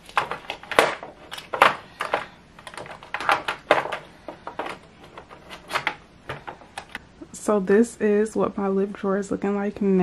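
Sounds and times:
plastic tubes clicking and clattering: 0.0 - 7.0.

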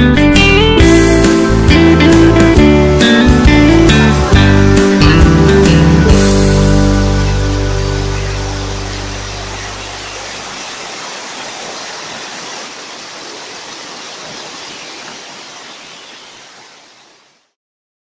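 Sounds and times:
song: 0.3 - 10.0
mountain stream rushing: 1.0 - 17.4.

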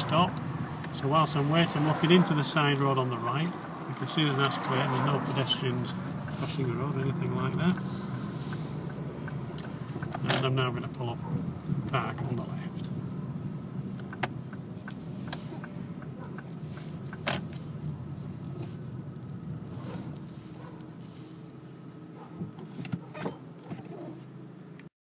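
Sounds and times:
car engine and tyre hum: 0.0 - 24.9.

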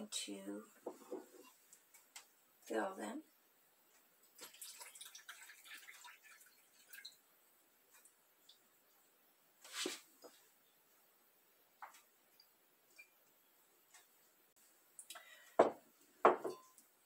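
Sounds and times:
liquid pouring rush: 4.4 - 7.2
glass set down knocks: 15.6 - 16.6.

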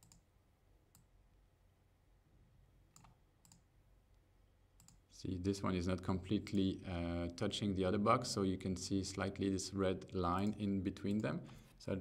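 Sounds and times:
computer mouse clicks: 0.0 - 0.3, 2.9 - 3.7, 4.8 - 5.0.

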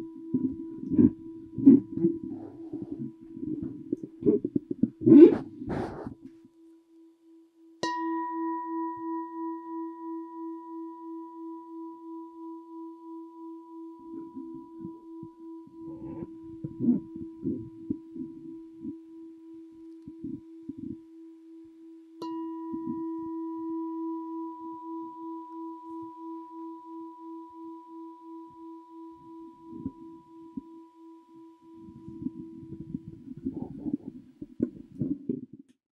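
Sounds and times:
singing bowl ringing: 0.0 - 4.4, 7.3 - 34.2.

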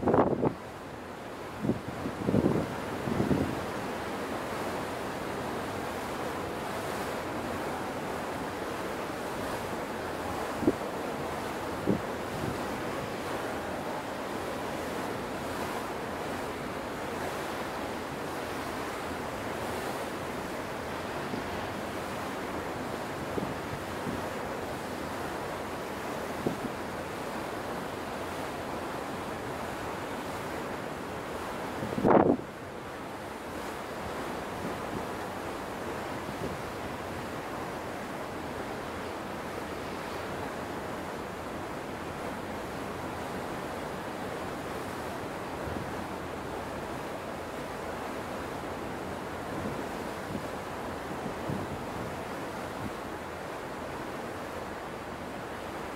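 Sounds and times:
wind on microphone: 0.0 - 0.6, 1.6 - 3.7, 31.7 - 32.6, 49.5 - 53.0.

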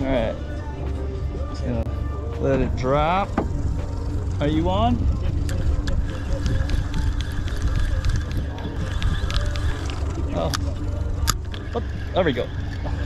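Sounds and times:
low rumble: 0.0 - 13.0
fishing reel clicks: 5.4 - 11.7.

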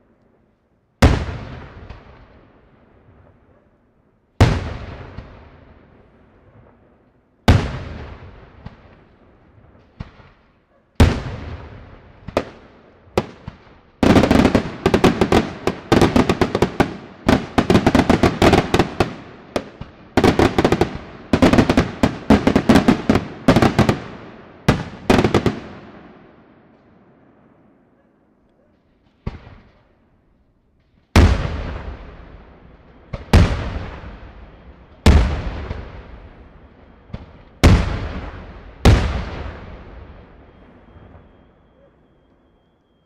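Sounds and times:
fireworks barrage and crackle: 0.0 - 3.6, 4.3 - 27.9, 28.7 - 43.0
fireworks bangs with echo: 1.0 - 3.6, 4.4 - 27.9, 28.9 - 30.0, 31.0 - 43.0
small fireworks pops: 26.7 - 27.0, 28.4 - 43.0.

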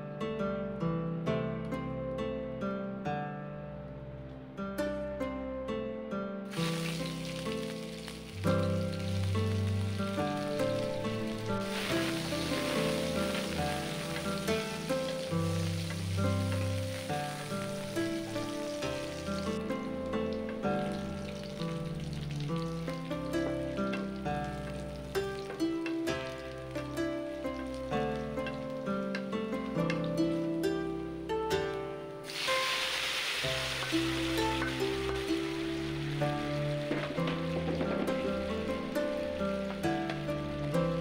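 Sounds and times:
plucked-string background music: 0.0 - 41.0
onions sizzling in hot oil: 6.5 - 30.4, 32.2 - 41.0.

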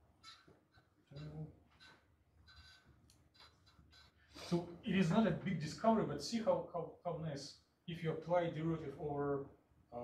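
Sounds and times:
marker squeaking on whiteboard: 0.0 - 4.6.

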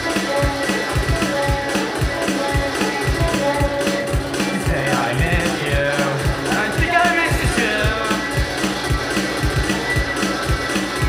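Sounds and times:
amplified electric guitars: 0.0 - 11.0
drums with steady beat: 0.0 - 11.0.

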